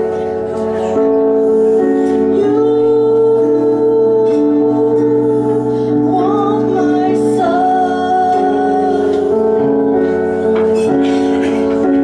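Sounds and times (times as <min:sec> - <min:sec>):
sustained keyboard chords: 0:00.0 - 0:12.0
woman singing long note: 0:02.3 - 0:09.7.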